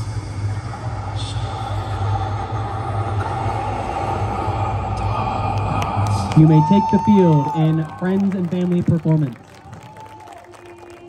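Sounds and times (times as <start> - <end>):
low rumble: 0.0 - 10.1.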